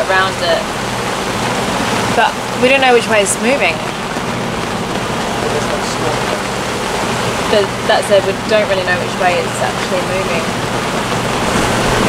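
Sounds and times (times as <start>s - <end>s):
heavy rain hissing: 0.0s - 12.0s.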